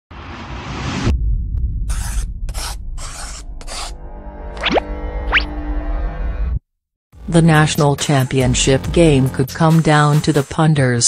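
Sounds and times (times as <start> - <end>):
scratchy swish sound effects: 1.9 - 4.0.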